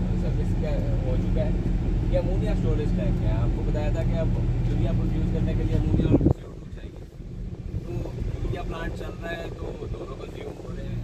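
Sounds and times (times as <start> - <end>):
engine and road rumble: 0.0 - 11.0
loud steady hum: 0.0 - 11.0.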